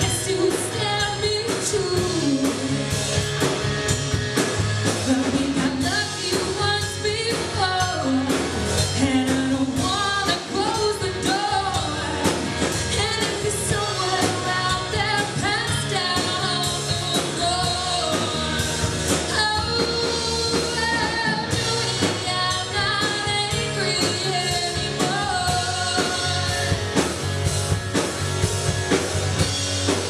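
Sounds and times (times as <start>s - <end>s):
woman singing: 0.0s - 3.0s, 4.9s - 27.0s
drum kit: 0.0s - 30.0s
electric bass: 0.0s - 30.0s
electric guitar: 0.0s - 30.0s.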